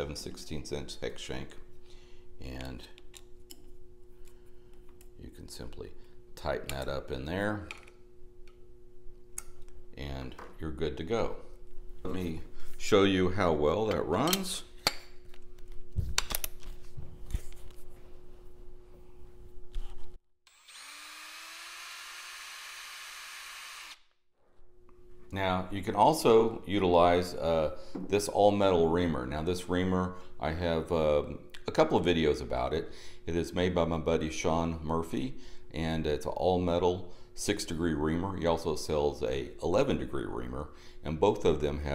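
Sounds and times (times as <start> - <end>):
power drill whining: 20.5 - 24.1.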